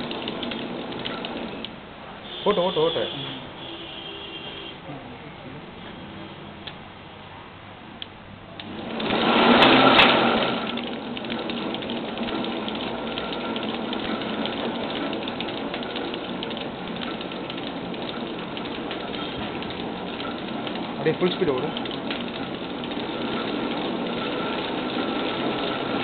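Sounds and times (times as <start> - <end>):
printing machine rapid clicking: 0.0 - 1.7, 8.6 - 26.0.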